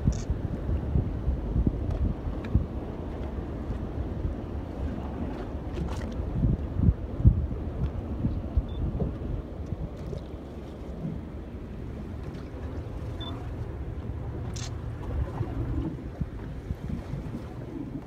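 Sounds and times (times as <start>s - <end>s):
choppy sea: 0.0s - 18.0s
wind buffeting microphone: 0.0s - 18.0s.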